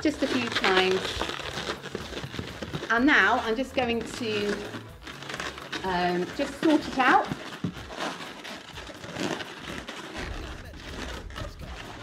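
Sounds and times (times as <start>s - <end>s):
balloon rubber rubbing and scuffing: 0.0s - 12.0s.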